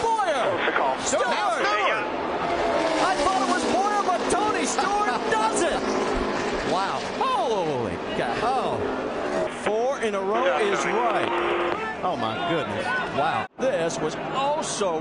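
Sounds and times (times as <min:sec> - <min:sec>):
race car engines at full throttle: 0:00.0 - 0:12.0
grandstand crowd: 0:00.0 - 0:15.0.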